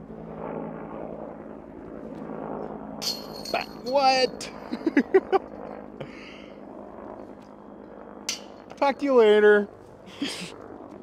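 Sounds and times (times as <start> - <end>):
man laughing: 4.5 - 6.4, 10.1 - 10.6.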